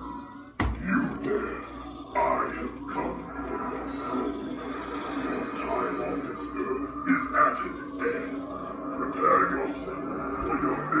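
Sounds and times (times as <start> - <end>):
low drone: 0.0 - 11.0
wavering voice-like sound: 0.0 - 11.0.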